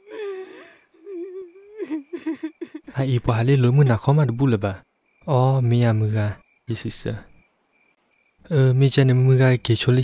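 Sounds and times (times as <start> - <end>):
insects chirping: 0.0 - 10.0
man narrating: 2.9 - 7.4, 8.4 - 10.0.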